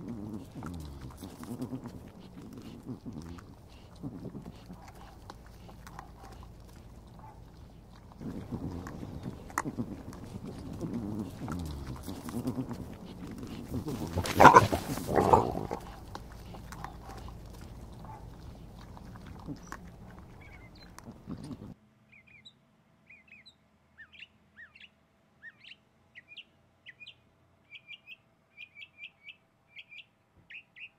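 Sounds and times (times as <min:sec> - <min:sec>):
peccaries grunting and growling: 0:00.0 - 0:21.8.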